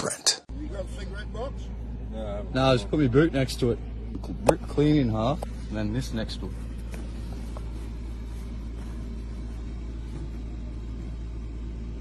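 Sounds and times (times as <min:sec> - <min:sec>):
vehicle engine idling: 0:00.5 - 0:12.0.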